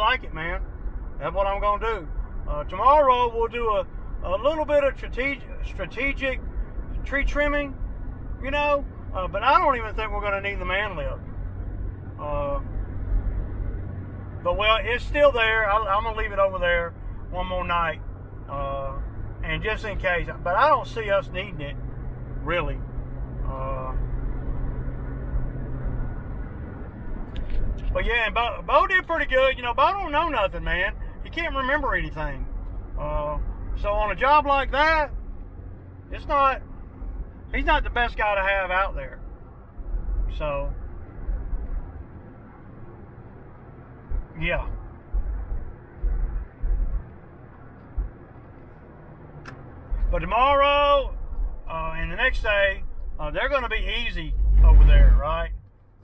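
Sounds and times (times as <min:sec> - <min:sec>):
engine hum: 0:00.0 - 0:56.0
road noise low rumble: 0:00.0 - 0:56.0
low thuds: 0:39.2 - 0:50.3.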